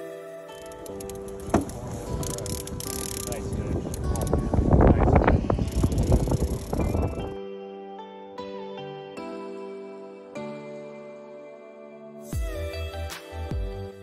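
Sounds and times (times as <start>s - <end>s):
background music: 0.0s - 14.0s
wind on microphone: 1.0s - 7.4s.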